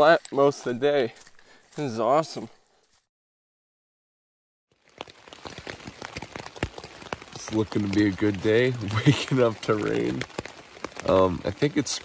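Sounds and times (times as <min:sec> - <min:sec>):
rain pattering on tent fabric: 0:04.7 - 0:12.0.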